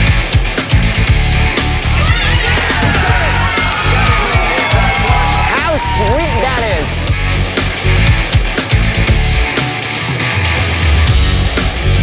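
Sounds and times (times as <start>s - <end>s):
hard rock music: 0.0s - 12.0s
excited voices yelling: 1.8s - 7.2s.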